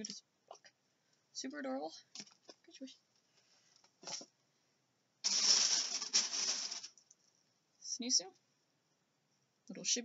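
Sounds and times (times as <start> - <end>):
rustling and rattling of items: 2.1 - 4.4, 5.2 - 7.4.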